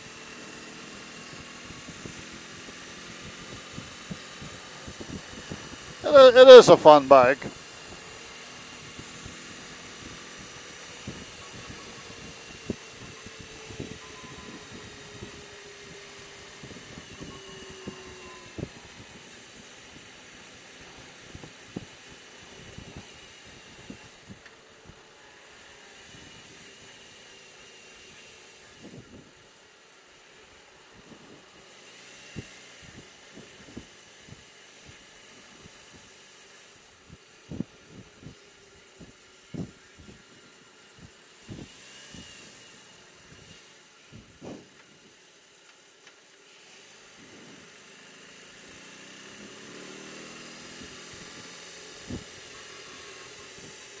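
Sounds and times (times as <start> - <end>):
thin whine: 0.0 - 33.9, 34.8 - 54.0
road and wind noise: 0.0 - 54.0.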